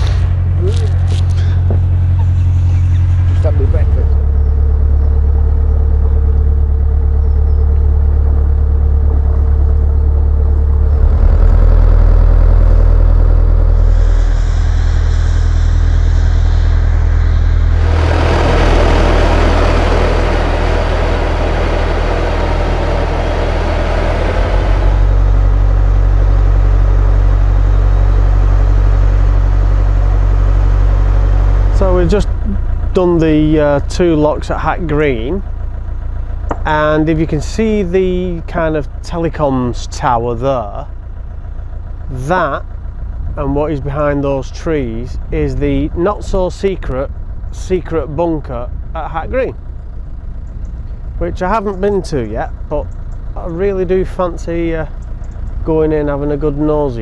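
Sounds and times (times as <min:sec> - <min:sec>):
boat diesel engine running: 0:00.0 - 0:57.0
loud hissing: 0:13.7 - 0:26.1.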